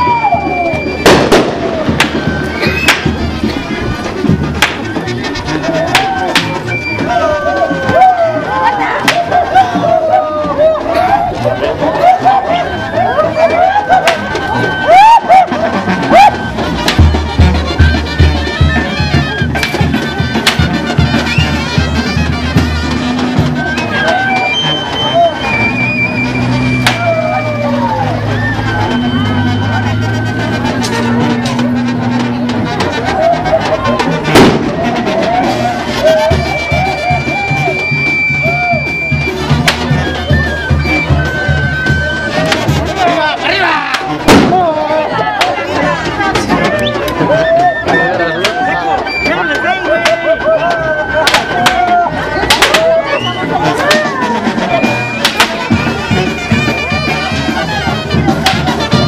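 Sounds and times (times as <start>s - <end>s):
crowd noise: 0.0s - 59.0s
high wind instrument music: 0.0s - 59.0s
loud sharp cracks: 4.6s - 4.8s, 52.5s - 52.8s.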